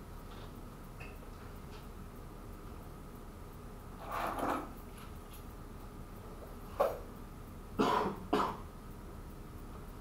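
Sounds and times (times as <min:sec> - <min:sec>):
man coughing: 0:07.8 - 0:08.6.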